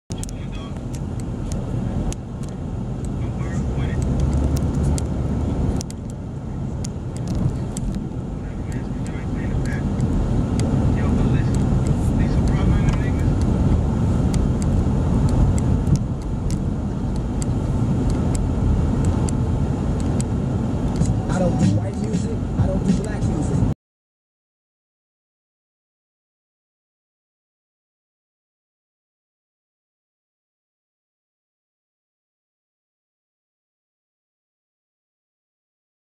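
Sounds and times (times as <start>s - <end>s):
car road and engine rumble: 0.1s - 23.8s.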